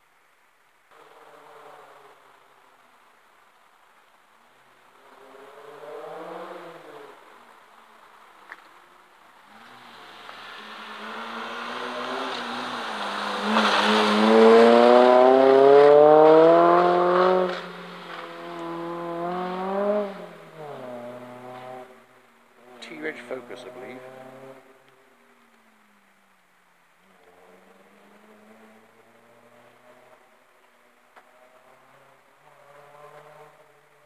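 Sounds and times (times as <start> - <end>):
rally car engine accelerating past: 5.0 - 7.2, 9.5 - 24.8, 27.0 - 34.0.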